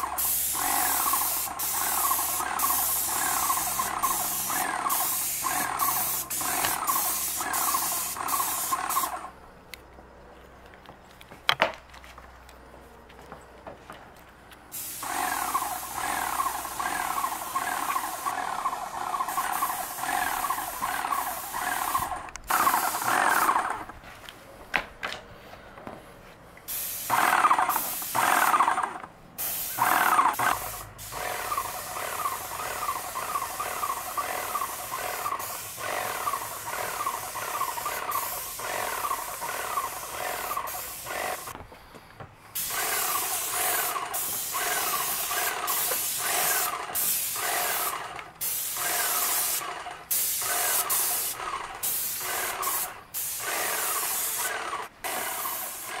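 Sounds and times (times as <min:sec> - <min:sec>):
paint sprayer hissing: 0:00.0 - 0:09.3, 0:14.7 - 0:24.0, 0:26.6 - 0:41.6, 0:42.5 - 0:56.0.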